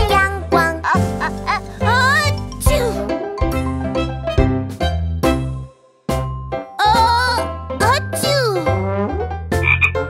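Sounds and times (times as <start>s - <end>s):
cartoon frog croaking: 9.6s - 10.0s.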